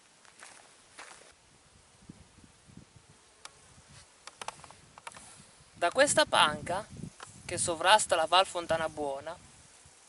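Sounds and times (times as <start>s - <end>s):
faint insect buzzing: 0.0s - 10.0s.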